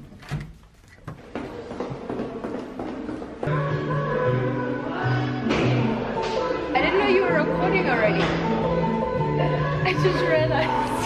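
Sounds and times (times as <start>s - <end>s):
background music: 3.3s - 11.0s.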